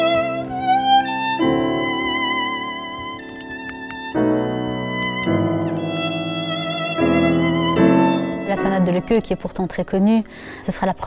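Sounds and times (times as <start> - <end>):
violin playing with vibrato: 0.0 - 9.5
piano chords: 0.0 - 10.6.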